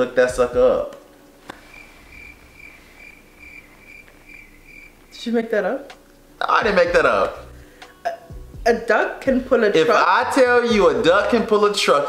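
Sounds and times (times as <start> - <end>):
cricket chirping: 1.5 - 5.3.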